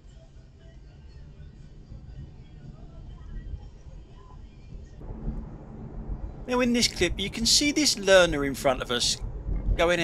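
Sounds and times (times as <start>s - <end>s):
faint background music: 0.0s - 10.0s
steady low hum: 0.0s - 10.0s
car rumble inside cabin: 1.4s - 10.0s.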